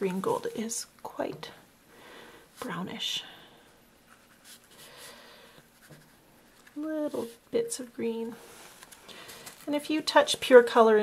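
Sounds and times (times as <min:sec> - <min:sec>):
brush stroking paint on paper: 0:04.0 - 0:05.1, 0:05.7 - 0:08.8.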